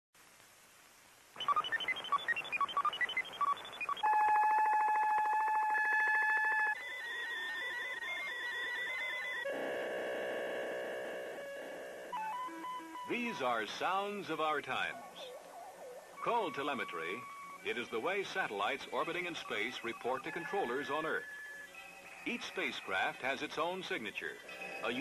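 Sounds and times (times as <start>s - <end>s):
steady buzzing tone: 1.0s - 13.2s
rapid beeps jumping between pitches: 1.4s - 4.0s
low pulsing buzz: 9.5s - 12.2s.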